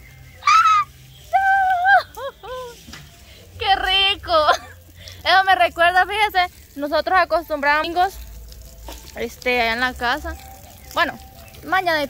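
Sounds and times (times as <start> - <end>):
water spraying from garden hose: 0.0 - 12.0
woman shrieking: 0.4 - 2.7.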